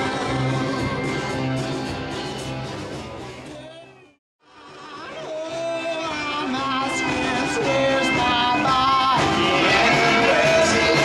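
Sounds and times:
live band music with singing: 0.0 - 11.0.

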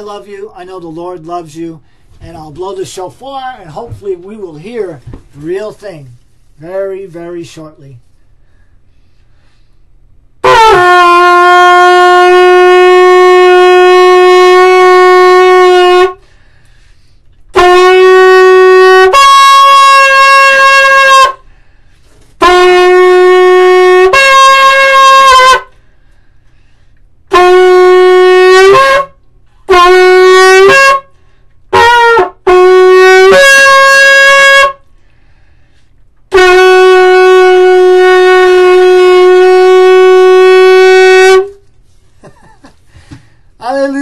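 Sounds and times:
shofar blast: 10.4 - 16.3, 17.5 - 21.5, 22.3 - 25.8, 27.3 - 35.0, 35.7 - 41.7.

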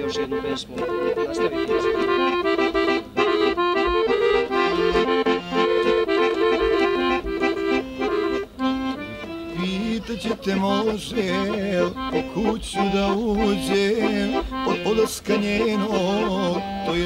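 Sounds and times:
accordion playing folk melody: 0.0 - 17.0.

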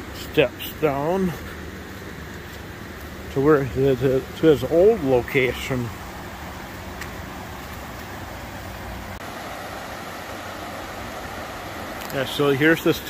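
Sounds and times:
river rushing over rocks: 7.5 - 13.0.

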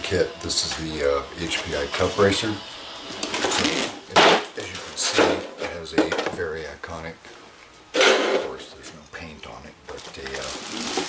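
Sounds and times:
plastic packaging rustling and crinkling: 3.2 - 5.5, 9.9 - 11.0.

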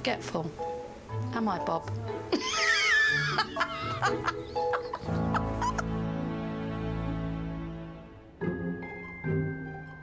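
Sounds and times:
background music: 0.0 - 10.0
laughter: 2.3 - 6.0.

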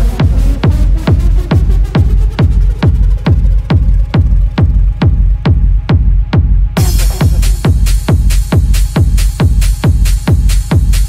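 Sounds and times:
acid techno music: 0.0 - 11.0
kick drum: 0.0 - 11.0.

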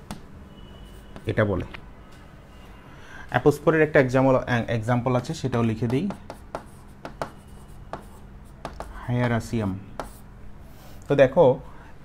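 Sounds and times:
faint steady hum: 0.0 - 12.0
stylus tapping touchscreen: 5.8 - 9.4.

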